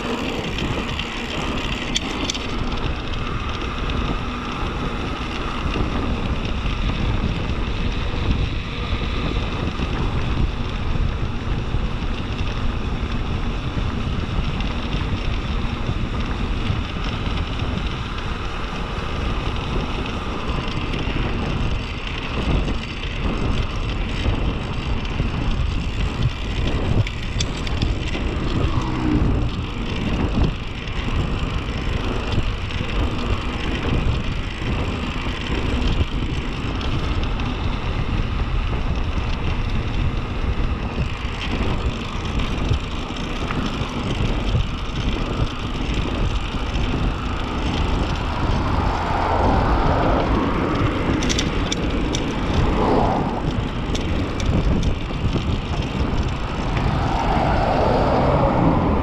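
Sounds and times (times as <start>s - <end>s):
tyre noise on asphalt: 0.0s - 59.0s
wind rushing over microphone: 0.0s - 59.0s.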